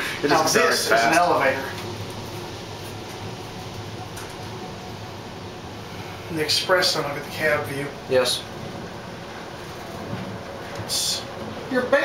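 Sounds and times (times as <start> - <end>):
elevator travelling down: 0.0 - 12.0.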